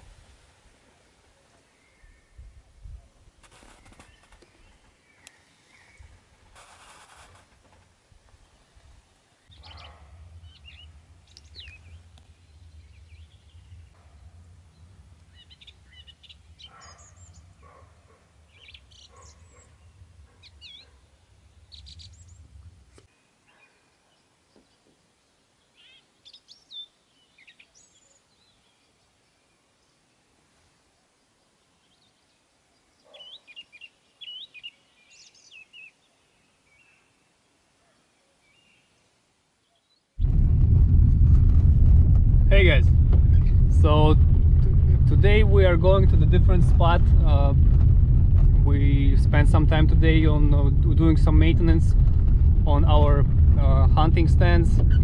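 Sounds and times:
small birds chirping: 3.5s - 6.6s, 8.4s - 25.0s, 25.6s - 30.4s, 31.2s - 40.2s
low steady hum: 9.5s - 18.6s, 40.2s - 55.0s.

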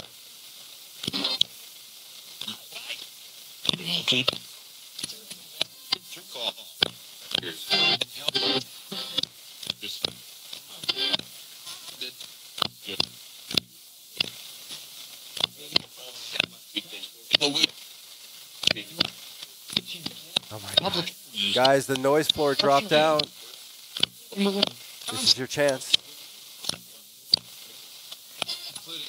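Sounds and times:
radio static hiss: 0.0s - 29.0s
fragments of broadcast voices: 2.4s - 29.0s.

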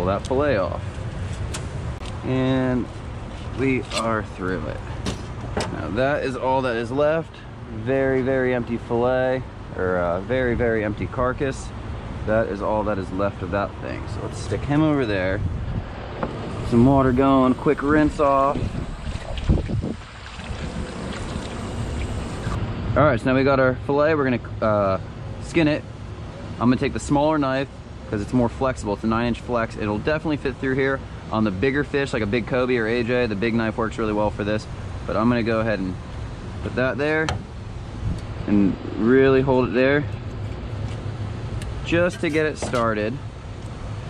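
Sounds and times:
hose water splashing on steel table: 19.0s - 22.5s.

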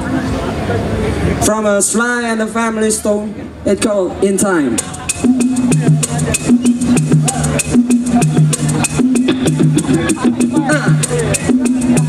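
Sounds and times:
repeating bass line: 4.6s - 12.0s
crisp percussion strokes: 4.8s - 12.0s.

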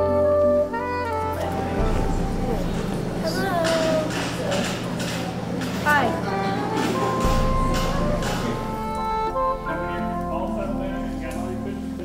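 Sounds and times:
background music with held notes: 0.0s - 12.0s
person's voice: 1.4s - 4.8s.

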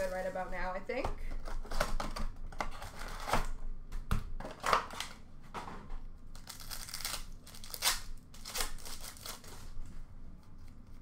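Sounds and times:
foil wrapper tearing and crinkling: 6.3s - 9.8s.

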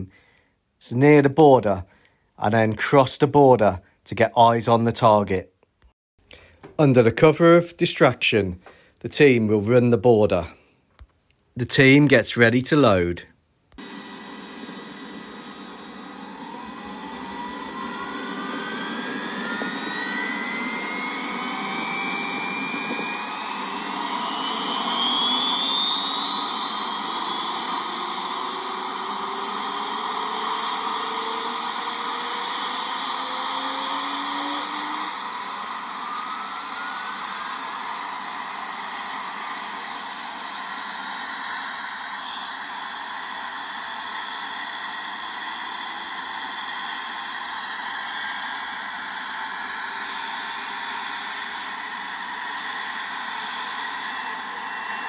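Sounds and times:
helicopter turbine engines whining: 13.8s - 55.0s.

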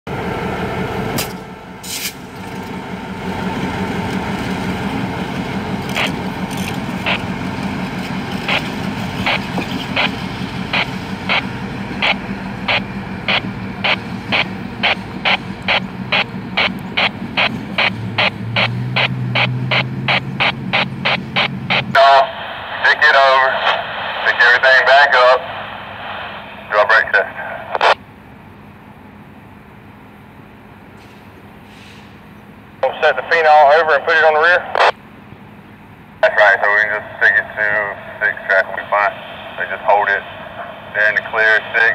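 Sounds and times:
diesel locomotive engine drone: 0.0s - 41.9s
wheels clicking over rail joints: 4.0s - 10.5s
tinny radio voice chatter: 19.4s - 28.0s, 32.8s - 35.0s, 36.2s - 41.9s.

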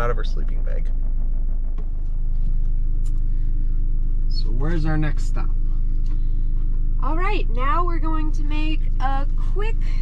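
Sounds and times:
van engine humming: 0.0s - 10.0s.

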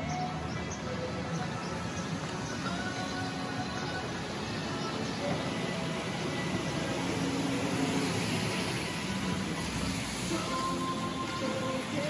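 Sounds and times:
distant road traffic hum: 0.0s - 12.0s.

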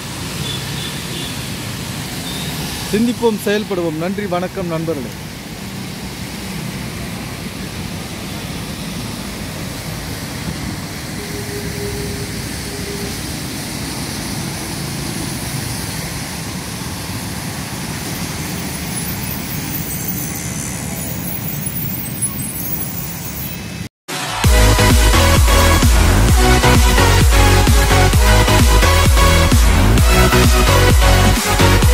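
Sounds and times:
tyre hiss on wet road: 0.0s - 24.3s
traffic engines: 0.0s - 31.9s.

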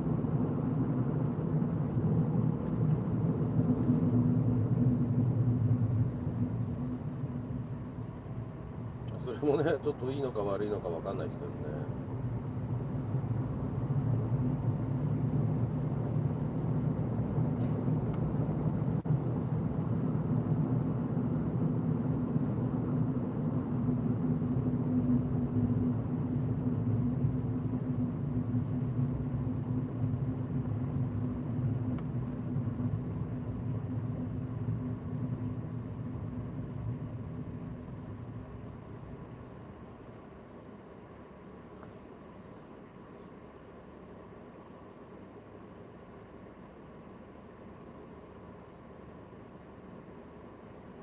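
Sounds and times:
car road and engine noise: 0.0s - 51.0s.

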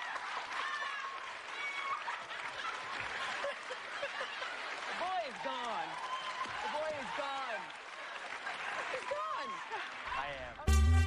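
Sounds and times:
audience applauding: 0.0s - 11.0s.

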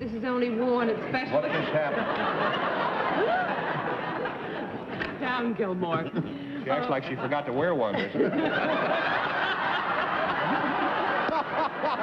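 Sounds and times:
studio audience laughing: 1.0s - 5.0s, 6.0s - 12.0s.

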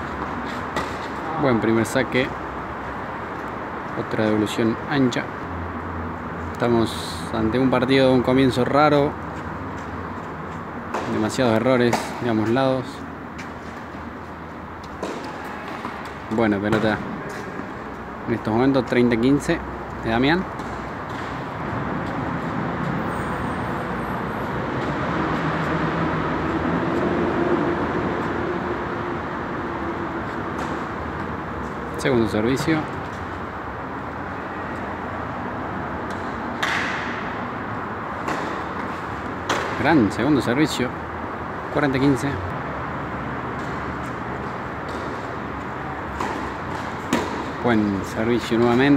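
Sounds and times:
indoor hall background noise: 0.0s - 48.9s
tennis racket hitting ball: 0.2s - 1.3s, 11.9s - 12.2s, 14.8s - 17.9s, 36.0s - 39.8s, 43.5s - 47.6s.

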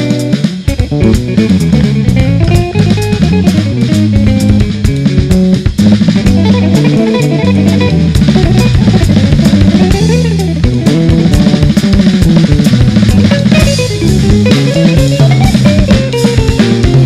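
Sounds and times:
drum kit with cymbals: 0.0s - 17.0s
electric bass: 0.0s - 17.0s
electric guitar playing jazz: 0.0s - 17.0s.

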